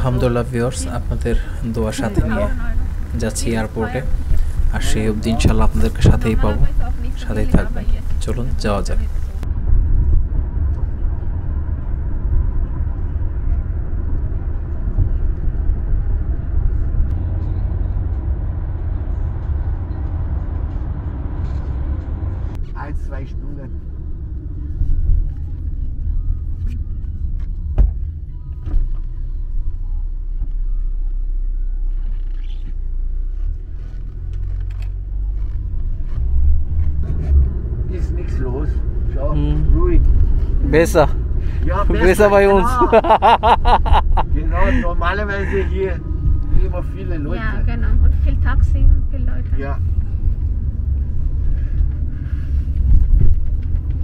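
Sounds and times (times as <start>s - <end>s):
car driving rumble from inside: 0.0s - 54.0s.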